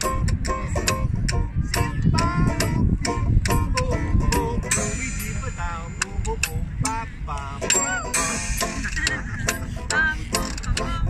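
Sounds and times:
acoustic jazz band playing: 7.7 - 10.9.

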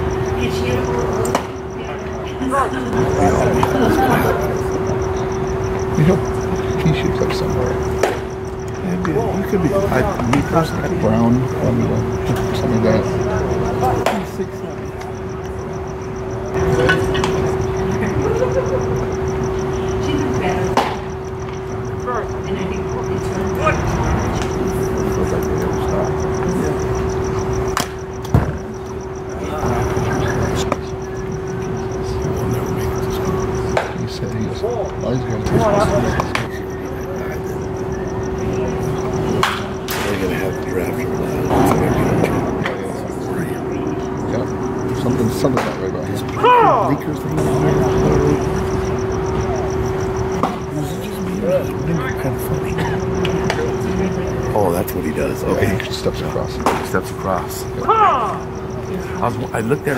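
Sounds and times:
faint distant voices: 0.0 - 59.9
people chattering: 0.0 - 59.9
steady low hum: 0.0 - 59.9.

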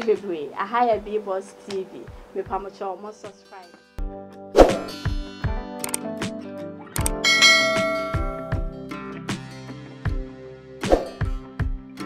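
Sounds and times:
background music with steady beat: 0.0 - 12.0
click: 5.8 - 6.0
bright bell chime: 7.2 - 8.7.

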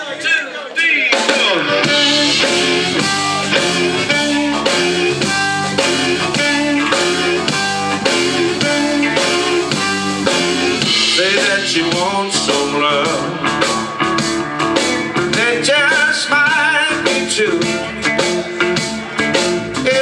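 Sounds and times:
electric blues band playing: 1.0 - 20.0
amplified harmonica: 1.7 - 12.2.

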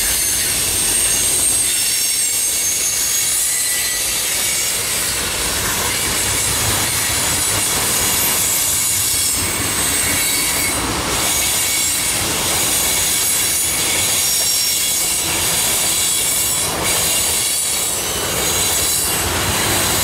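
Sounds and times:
train wheels rolling on rails: 0.0 - 20.0.

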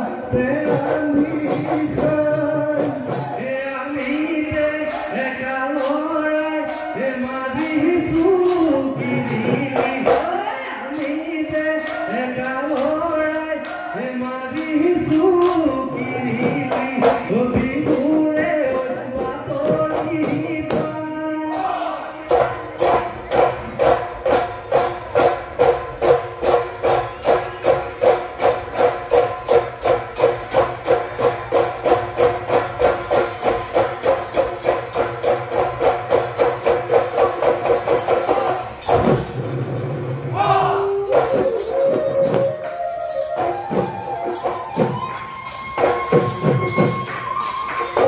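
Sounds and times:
fast drums beating: 0.0 - 21.7, 22.3 - 48.0
voices singing: 40.4 - 42.4.

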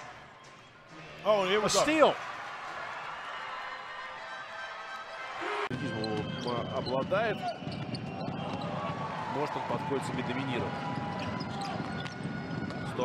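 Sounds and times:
crowd noise: 0.0 - 13.0.

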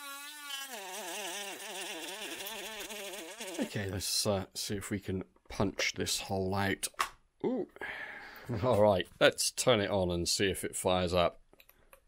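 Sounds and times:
rotary tool cutting plastic: 0.0 - 0.8.

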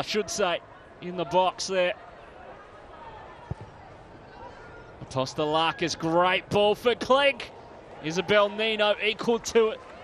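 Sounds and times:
stadium background noise: 0.0 - 10.0.

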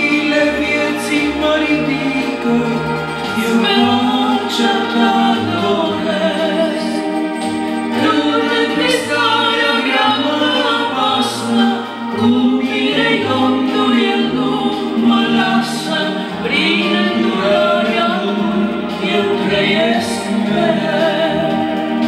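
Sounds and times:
man and woman singing: 0.0 - 22.0.

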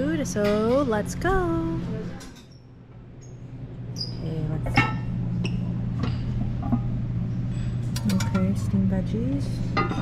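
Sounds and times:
room ventilation hum: 0.0 - 10.0.

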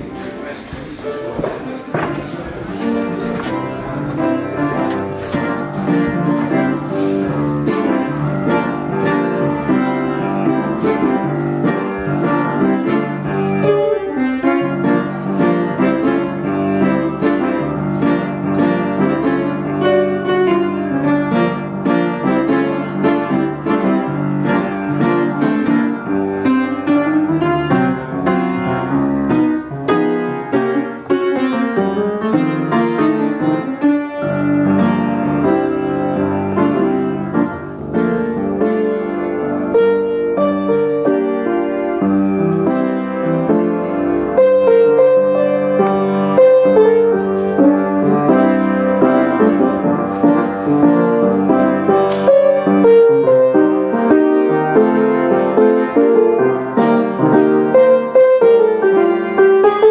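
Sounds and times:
upright piano playing: 0.0 - 59.9.

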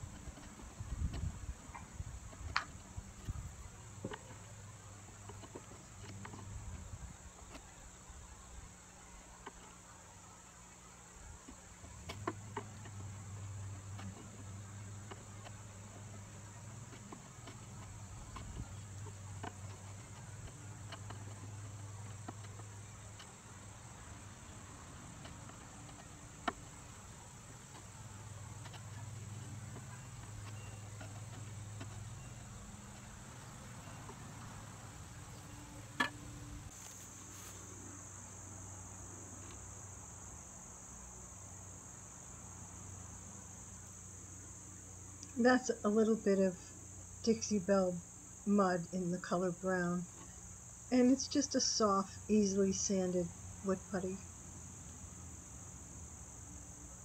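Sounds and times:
chisel scraping and clicking: 0.0 - 7.9, 11.4 - 34.6
insects droning: 0.0 - 57.0.

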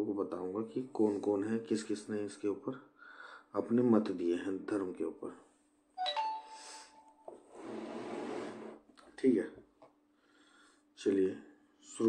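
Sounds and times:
chime ding: 6.0 - 7.2.

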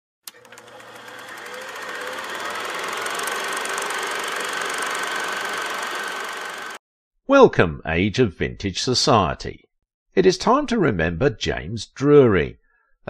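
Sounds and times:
film projector clatter: 0.3 - 6.8.

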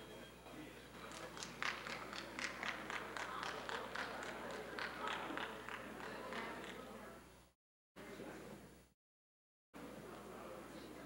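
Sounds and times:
murmur of audience talking: 0.0 - 8.8.

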